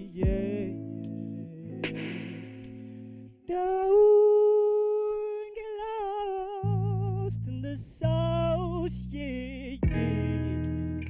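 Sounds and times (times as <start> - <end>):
man singing unaccompanied: 0.0 - 2.7, 3.4 - 10.8.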